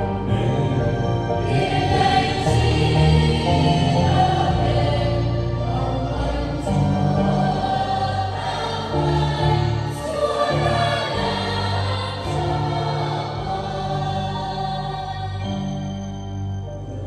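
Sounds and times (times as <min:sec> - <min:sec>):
choir singing a hymn: 0:00.0 - 0:17.0.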